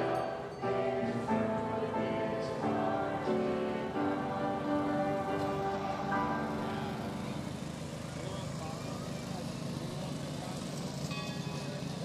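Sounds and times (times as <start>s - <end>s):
small engines driving past: 0.0s - 12.0s.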